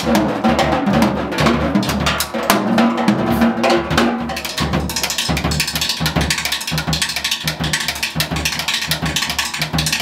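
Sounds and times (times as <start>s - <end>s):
drum kit played fast: 0.0s - 10.0s.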